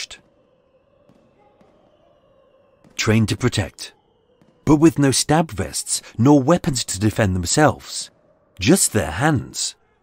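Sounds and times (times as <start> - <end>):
man narrating: 0.0 - 0.2, 3.0 - 4.0, 4.6 - 9.8.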